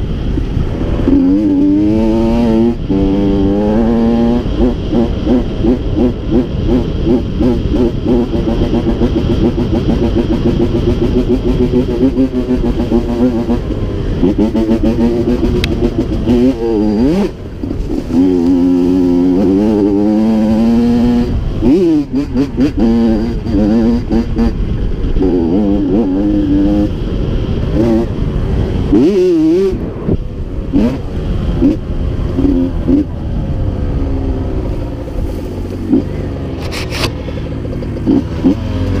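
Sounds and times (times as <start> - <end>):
dirt bike engine revving: 0.6 - 39.0.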